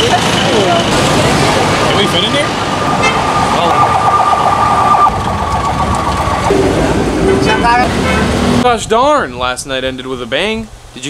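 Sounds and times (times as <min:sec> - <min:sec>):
street traffic: 0:00.0 - 0:08.8
steady high-pitched tone: 0:06.0 - 0:08.7.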